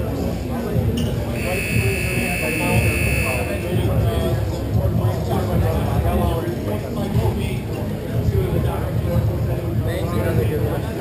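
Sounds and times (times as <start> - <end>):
players' voices: 0.1 - 11.0
short high buzzer blip: 1.4 - 3.8
steady high-pitched buzzer tone: 1.4 - 3.8.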